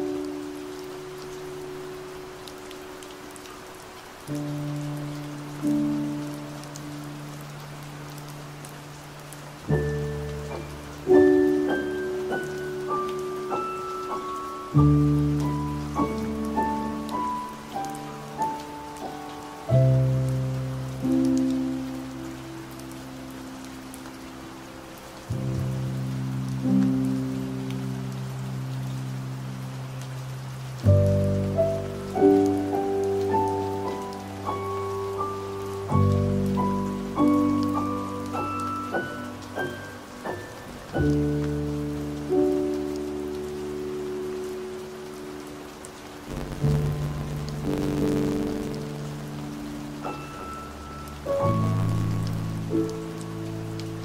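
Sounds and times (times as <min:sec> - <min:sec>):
gentle piano music: 0:00.0 - 0:54.0
steady rain: 0:00.0 - 0:54.0.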